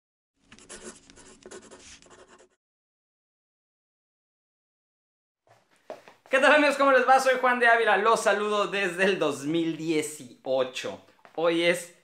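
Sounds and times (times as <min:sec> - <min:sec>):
pen scratching on paper: 0:00.5 - 0:02.6.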